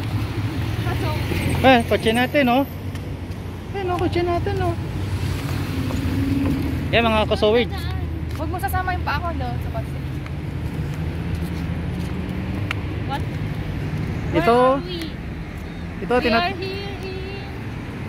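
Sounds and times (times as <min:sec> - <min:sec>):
cars passing close by: 0:00.0 - 0:18.0.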